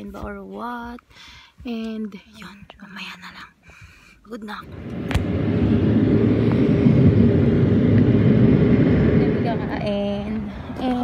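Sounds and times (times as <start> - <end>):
road and engine rumble in car: 4.4 - 11.0.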